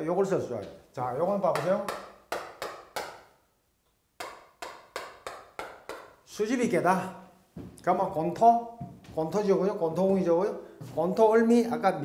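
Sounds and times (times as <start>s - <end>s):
chalk tapping on blackboard: 1.4s - 3.3s, 4.2s - 6.2s.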